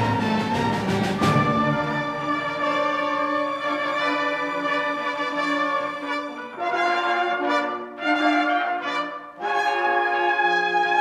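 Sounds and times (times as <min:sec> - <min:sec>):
orchestra playing held chords: 0:00.0 - 0:11.0.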